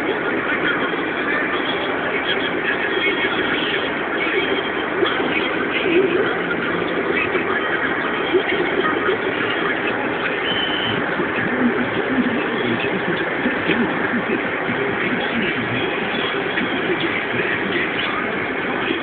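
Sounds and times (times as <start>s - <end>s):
car road and engine noise: 0.0s - 19.0s.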